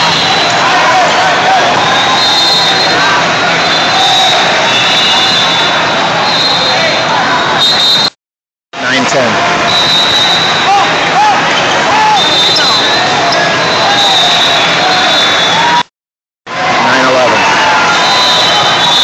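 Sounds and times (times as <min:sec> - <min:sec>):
voices calling and shouting: 0:08.9 - 0:15.8.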